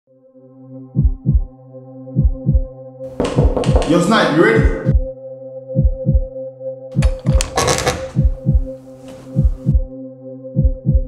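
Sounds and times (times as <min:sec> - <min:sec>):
heartbeat thumps: 0:01.0 - 0:01.5, 0:02.2 - 0:05.1, 0:05.8 - 0:06.3, 0:08.1 - 0:09.9, 0:10.6 - 0:11.0.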